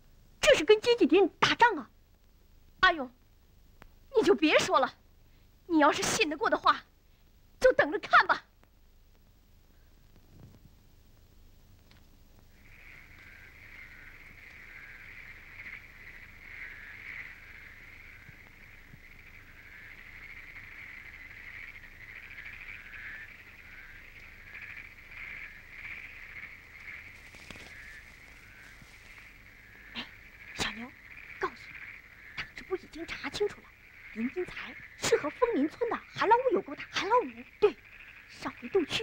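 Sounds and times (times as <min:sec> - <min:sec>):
frogs calling: 0:00.4 - 0:01.9, 0:04.1 - 0:05.0, 0:05.7 - 0:06.9, 0:07.6 - 0:08.5, 0:12.4 - 0:39.0.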